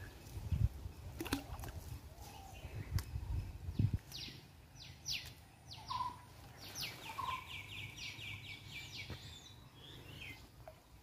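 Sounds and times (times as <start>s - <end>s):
high downward-sweeping bird calls: 3.8s - 10.4s.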